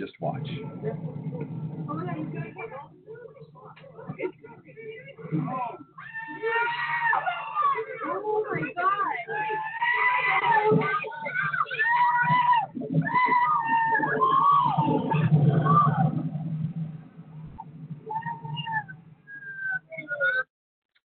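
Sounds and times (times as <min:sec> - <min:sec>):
floodwater rushing: 0:00.0 - 0:19.4
people screaming: 0:05.1 - 0:16.5, 0:17.6 - 0:20.4.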